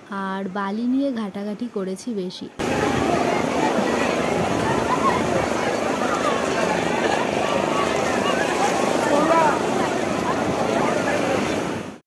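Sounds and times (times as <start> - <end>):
crowd voices: 2.6 - 12.0
surf rushing: 2.6 - 12.0.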